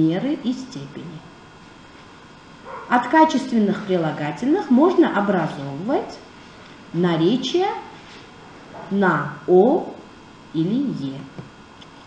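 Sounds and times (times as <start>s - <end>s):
woman speaking: 0.0s - 1.3s, 2.8s - 6.3s, 6.9s - 8.0s, 8.8s - 11.4s.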